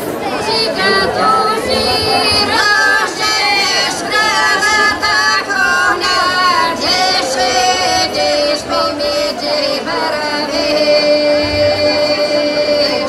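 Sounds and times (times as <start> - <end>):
women singing unaccompanied: 0.0 - 13.0.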